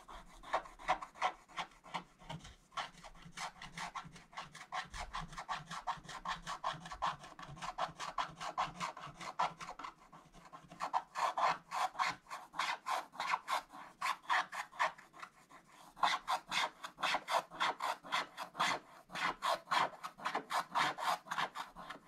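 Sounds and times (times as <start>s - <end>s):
stylus scraping paper: 0.0s - 22.0s.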